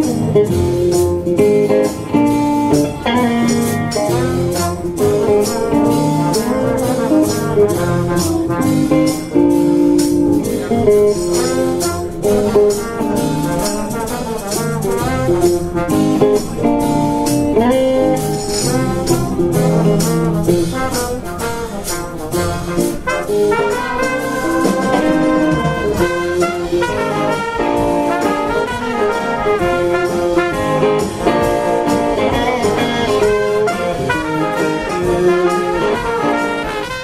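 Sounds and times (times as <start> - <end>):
brass horns playing: 0.0 - 37.0
electric guitar: 0.0 - 37.0
steady drum beat: 0.0 - 37.0.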